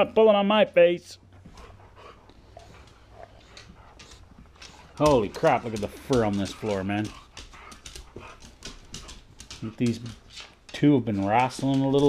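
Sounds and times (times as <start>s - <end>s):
dog claws clicking on floor: 2.5s - 12.0s.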